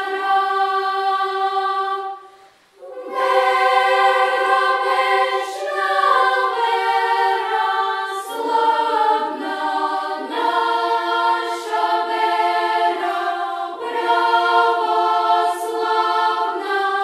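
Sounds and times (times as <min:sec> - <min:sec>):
children's choir singing a hymn: 0:00.0 - 0:17.0.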